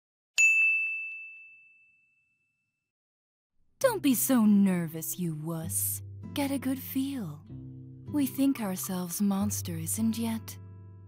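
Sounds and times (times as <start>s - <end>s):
bright bell ding: 0.4s - 2.5s.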